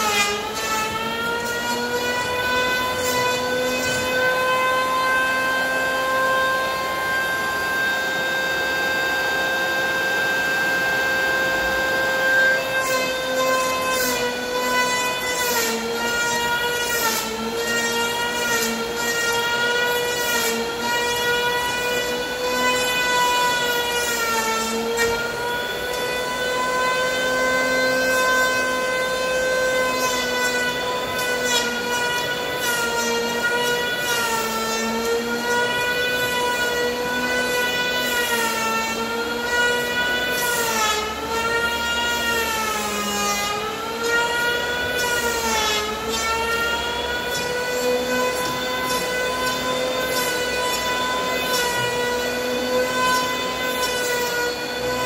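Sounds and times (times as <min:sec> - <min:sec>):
cutter shaving wood: 0:00.0 - 0:55.0
electric power planer whine: 0:00.0 - 0:55.0.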